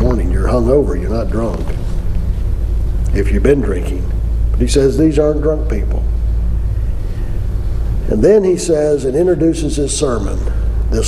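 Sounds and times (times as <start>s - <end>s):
deep low hum: 0.0s - 11.0s.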